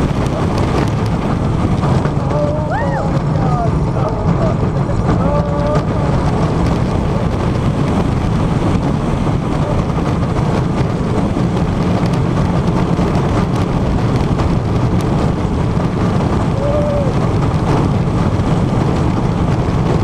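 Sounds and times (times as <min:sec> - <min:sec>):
roller coaster rumble on track: 0:00.0 - 0:20.0
wind roaring on microphone: 0:00.0 - 0:20.0.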